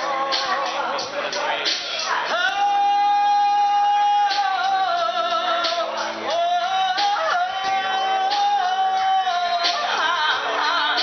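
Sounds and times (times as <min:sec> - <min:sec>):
woman singing karaoke: 0:00.0 - 0:01.3, 0:02.1 - 0:11.0
backing track music: 0:00.0 - 0:11.0.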